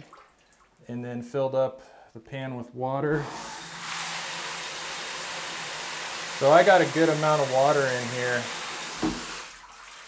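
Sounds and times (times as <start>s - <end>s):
water running into shower pan: 3.6s - 10.0s.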